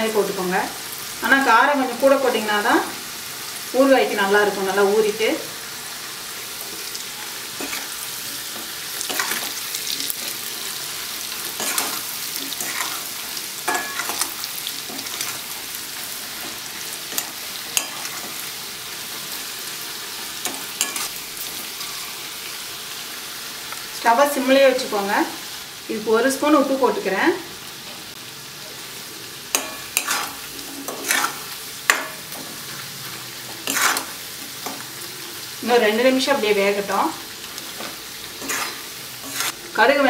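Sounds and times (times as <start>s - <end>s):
food sizzling in hot oil: 0.0s - 40.0s
metal ladle scraping a pan: 7.4s - 18.6s, 20.4s - 22.3s, 29.5s - 34.8s, 37.7s - 39.7s.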